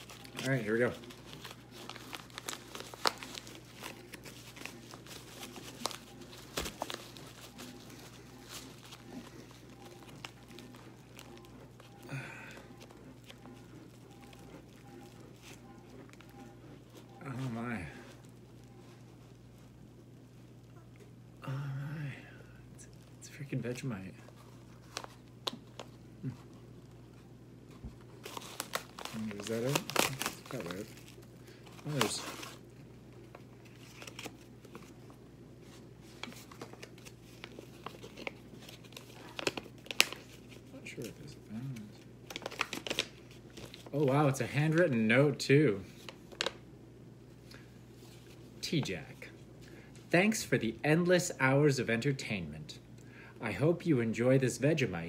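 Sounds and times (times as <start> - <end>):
paper wrapping crinkling and tearing: 0.0 - 19.6, 24.3 - 26.6, 28.0 - 45.1, 45.9 - 46.6.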